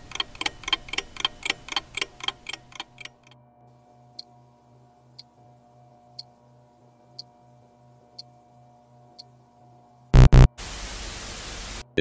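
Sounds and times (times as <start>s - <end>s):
buzzy emergency alert beeps: 10.2s - 10.5s
static hiss: 10.2s - 11.8s.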